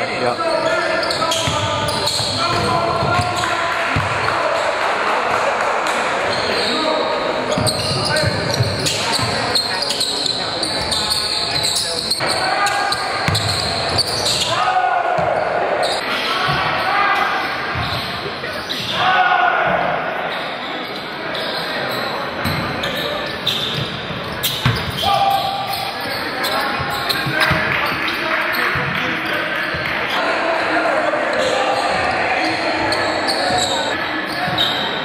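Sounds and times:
people shouting and chattering: 0.0s - 35.0s.

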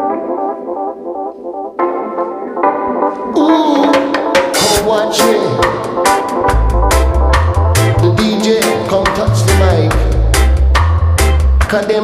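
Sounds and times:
organ playing chords: 0.0s - 11.8s.

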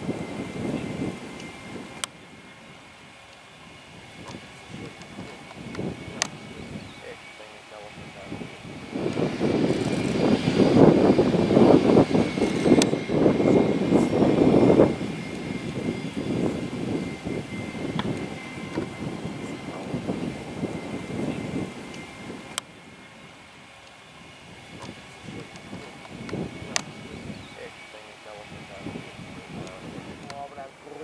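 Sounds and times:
high turbine whine: 0.0s - 31.0s
jet engine rumble: 0.0s - 31.0s.

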